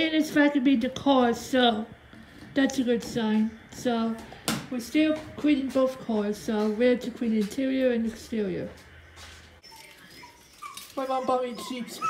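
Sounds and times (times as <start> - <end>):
dog whimpering: 9.6 - 12.0.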